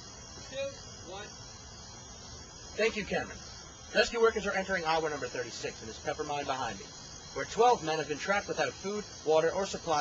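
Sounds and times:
low background hiss: 0.0s - 10.0s.

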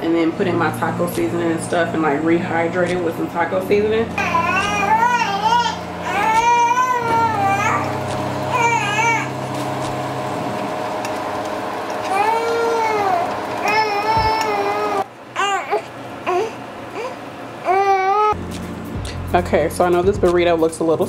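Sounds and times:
baby crying: 4.1s - 9.3s, 12.0s - 18.4s.

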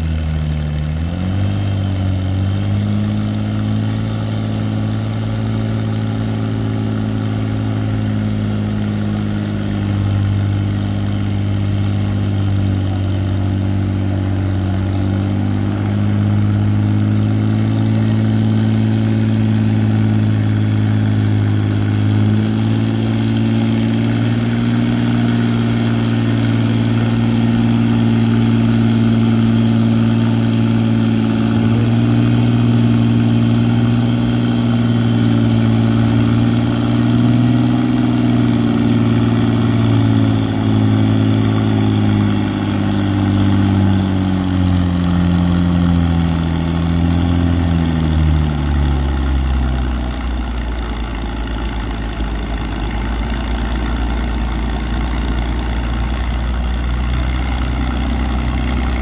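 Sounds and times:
tractor engine at full throttle: 0.0s - 59.0s.

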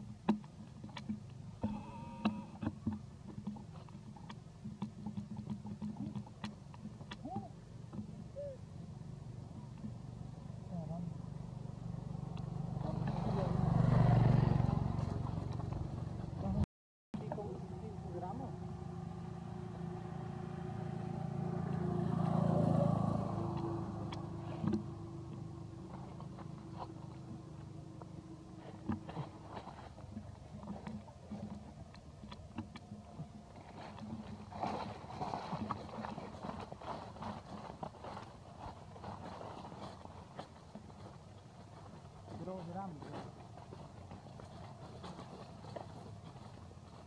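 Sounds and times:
motor vehicle passing: 0.0s - 16.6s, 17.2s - 47.0s.

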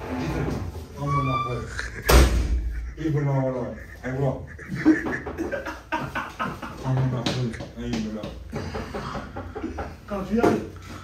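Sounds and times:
man talking: 2.8s - 5.1s, 6.8s - 8.5s.

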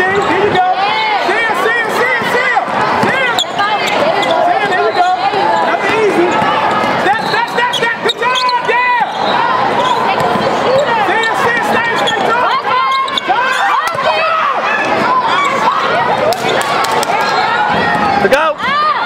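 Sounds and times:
players calling out: 0.0s - 19.0s
basketball bouncing: 2.9s - 7.0s, 9.8s - 12.3s
sneakers squeaking on court: 3.0s - 14.1s.

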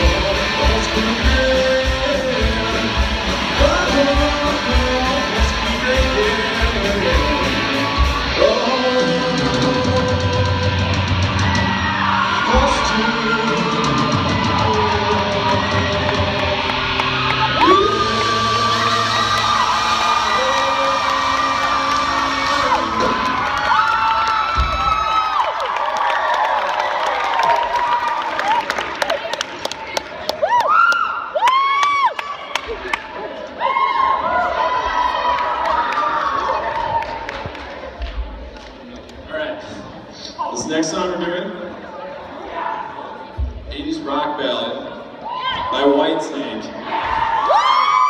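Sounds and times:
live rock band playing: 0.0s - 12.0s
audience clapping and cheering: 11.2s - 39.4s.

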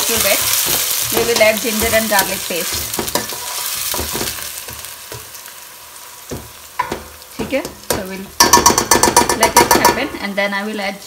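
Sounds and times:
metal spoon scraping a pan: 0.0s - 5.4s
onion sizzling in hot oil: 0.0s - 11.0s.

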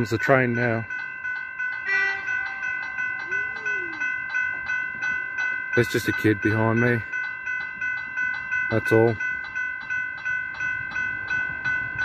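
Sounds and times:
level-crossing bell ringing: 0.0s - 12.0s.

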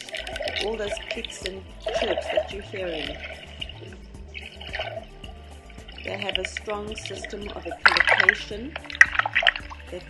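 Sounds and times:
background music with low beat: 0.0s - 10.0s.

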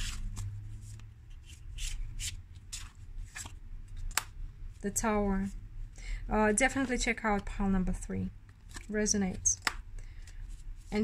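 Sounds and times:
cards rustling and flicking: 0.0s - 4.4s, 8.5s - 11.0s.

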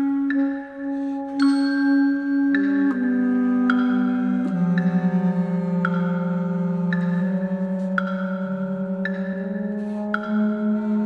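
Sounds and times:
long held low wind and bass notes: 0.0s - 11.0s.

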